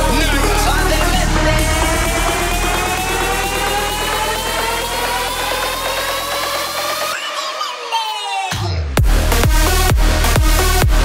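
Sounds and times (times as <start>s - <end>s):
low bass: 0.0s - 6.8s, 9.0s - 11.0s
fast repeated synth notes: 0.0s - 7.3s
synth riser: 0.0s - 7.3s.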